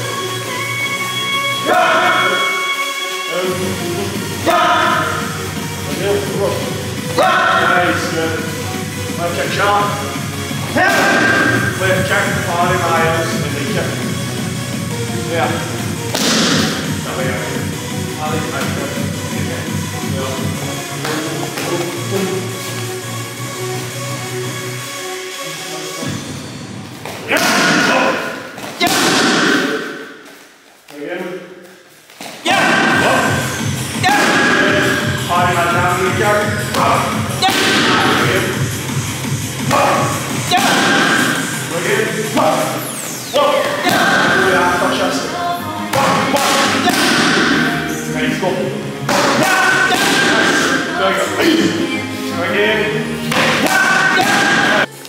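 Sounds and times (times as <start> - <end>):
loud background music: 0.0 - 30.2, 32.4 - 55.0
punches and kicks on pads: 16.1 - 16.8, 28.8 - 29.8, 34.0 - 34.8, 37.4 - 38.2, 40.5 - 41.4, 46.0 - 47.7.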